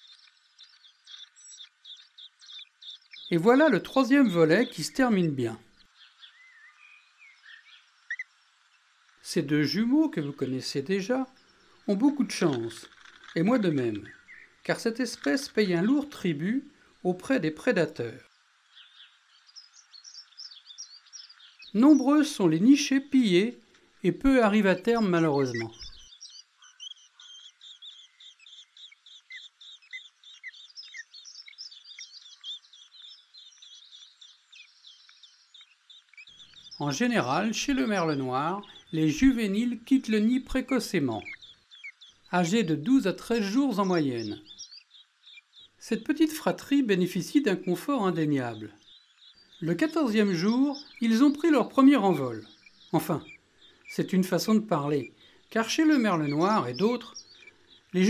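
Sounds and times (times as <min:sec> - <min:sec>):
bird chirps: 0:00.0 - 0:58.0.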